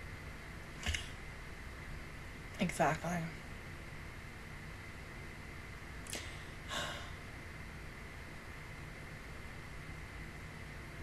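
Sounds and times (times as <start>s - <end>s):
faint microphone hiss: 0.0s - 11.0s
sharp click: 0.8s - 1.1s.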